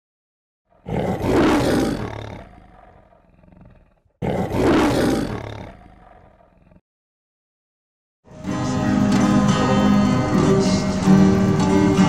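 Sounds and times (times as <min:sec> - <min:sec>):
lion roar: 0:00.7 - 0:06.8.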